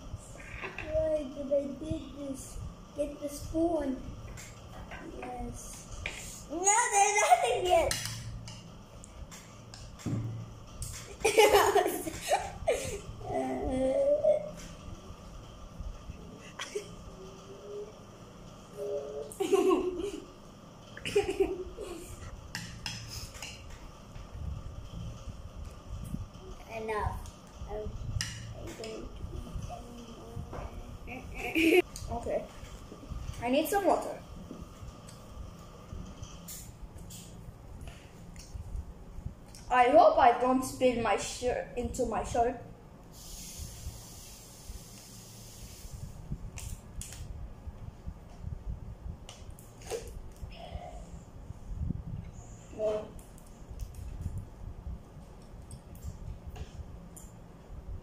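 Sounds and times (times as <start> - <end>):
hissing suck from water bottle: 43.2 - 46.2.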